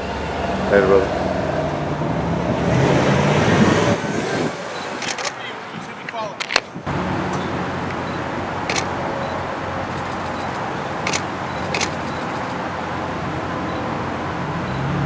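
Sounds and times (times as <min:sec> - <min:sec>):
camera shutter clicks: 0:05.0 - 0:05.4, 0:08.7 - 0:08.9, 0:09.9 - 0:12.6
car engines idling: 0:06.8 - 0:14.9.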